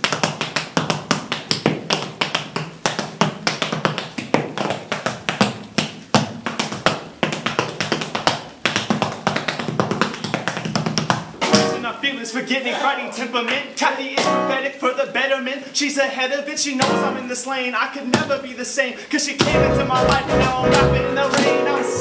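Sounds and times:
tap dancing shoe taps: 0:00.0 - 0:11.8, 0:18.1 - 0:18.4, 0:19.4 - 0:21.7
music with steady bass line: 0:19.5 - 0:22.0.

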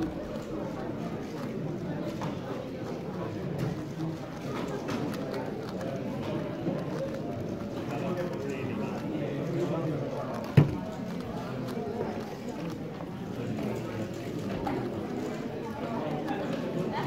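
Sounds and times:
chatter of many voices: 0:00.0 - 0:17.0.

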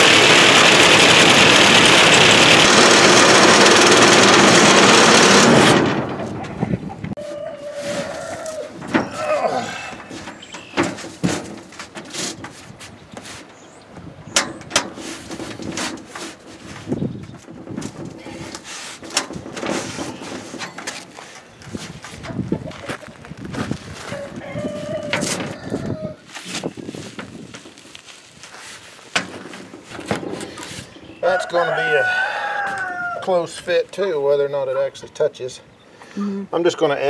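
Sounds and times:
tin roofing sheet rattling: 0:00.0 - 0:06.8, 0:08.7 - 0:13.5, 0:14.4 - 0:30.9.

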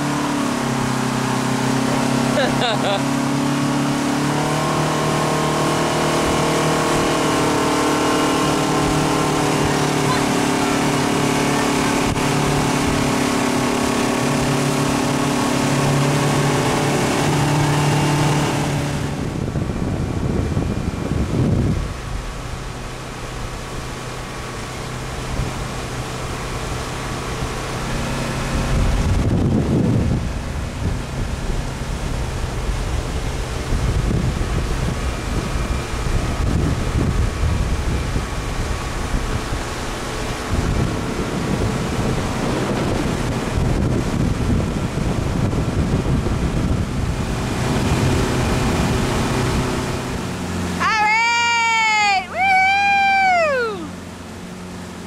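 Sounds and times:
wind on microphone: 0:00.0 - 0:51.1
motorboat engine running: 0:00.0 - 0:55.0
rushing wake water: 0:00.0 - 0:55.0.

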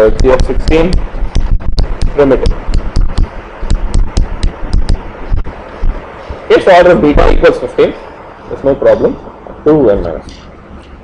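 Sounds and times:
chalk tapping on a board: 0:00.1 - 0:05.0.

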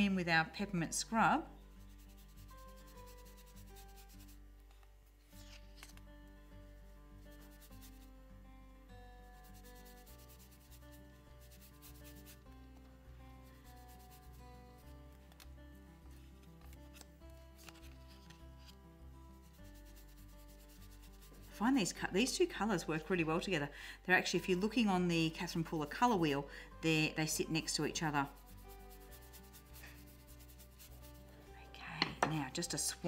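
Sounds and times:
quiet background music: 0:00.0 - 0:33.0
brush scratching on cardstock: 0:01.8 - 0:04.4, 0:07.4 - 0:08.1, 0:09.3 - 0:12.4, 0:13.6 - 0:14.4, 0:19.5 - 0:22.0, 0:27.4 - 0:31.3.

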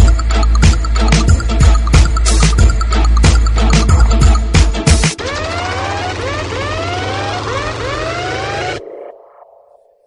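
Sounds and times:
rising siren-like whoops: 0:05.2 - 0:08.9.

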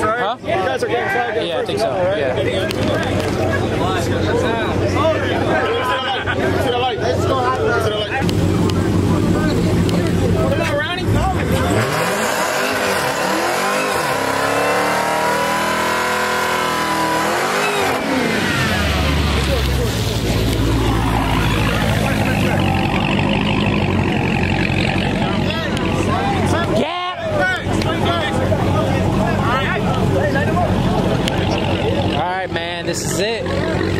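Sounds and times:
car engine revving hard: 0:11.0 - 0:26.7.

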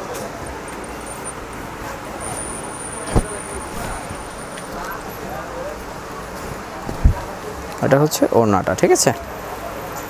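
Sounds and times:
shop background noise: 0:00.0 - 0:10.0
thin high-pitched whine: 0:00.4 - 0:06.2.

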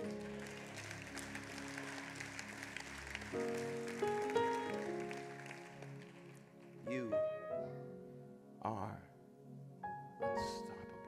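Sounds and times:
scattered applause: 0:00.0 - 0:07.2
keyboard sustained chords: 0:00.0 - 0:11.0.

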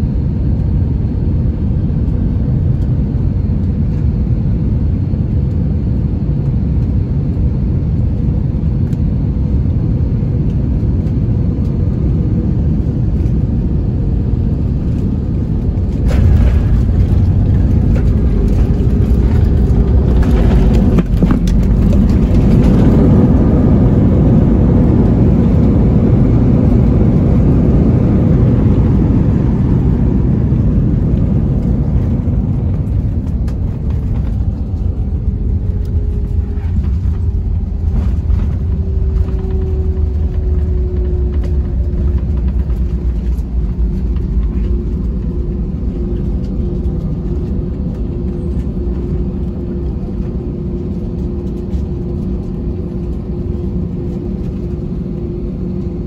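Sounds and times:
jet engine whine falling in pitch: 0:00.0 - 0:56.0
jet engines and wheels rumbling: 0:00.0 - 0:56.0.

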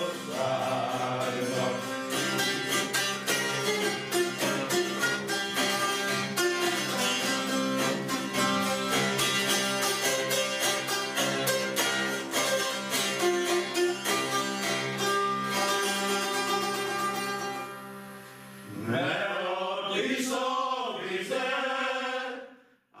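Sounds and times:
zither strummed rapidly: 0:00.0 - 0:18.0.

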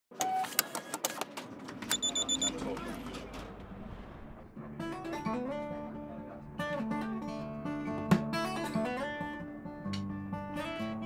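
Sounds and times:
acoustic guitar playing: 0:04.5 - 0:11.0.

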